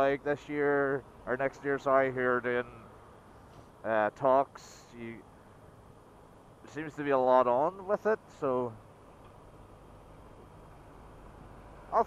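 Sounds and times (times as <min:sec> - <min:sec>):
motorcycle road noise: 0:00.0 - 0:12.0.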